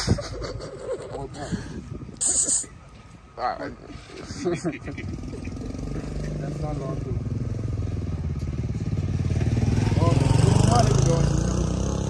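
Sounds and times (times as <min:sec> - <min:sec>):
small motorcycle engine running: 0:05.0 - 0:12.0.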